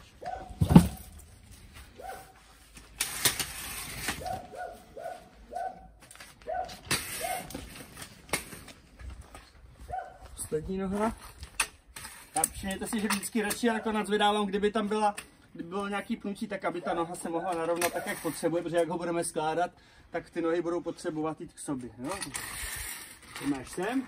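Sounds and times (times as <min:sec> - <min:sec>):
dog barking: 0:00.2 - 0:00.6, 0:02.0 - 0:02.3, 0:04.2 - 0:05.9, 0:06.5 - 0:07.5, 0:09.9 - 0:10.2.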